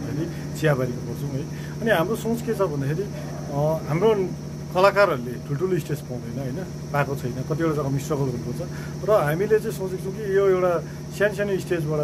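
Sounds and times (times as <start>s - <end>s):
low hum: 0.0s - 12.0s
man speaking: 0.0s - 12.0s
steady high-pitched tone: 0.0s - 12.0s.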